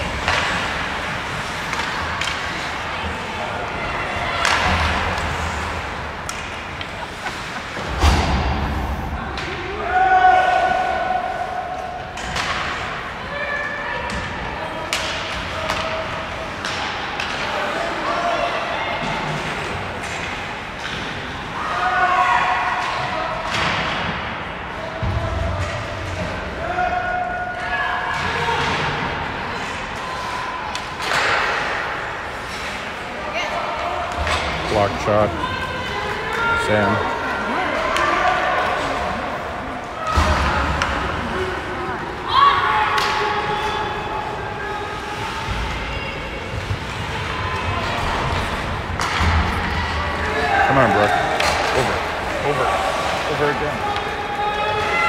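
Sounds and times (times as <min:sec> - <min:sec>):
puck and players hitting boards: 0:00.0 - 0:11.0, 0:11.7 - 0:13.4, 0:14.0 - 0:33.1, 0:33.7 - 0:42.2, 0:42.8 - 0:44.1, 0:45.0 - 0:55.0
people shouting: 0:09.1 - 0:12.0, 0:35.1 - 0:46.3, 0:47.2 - 0:55.0.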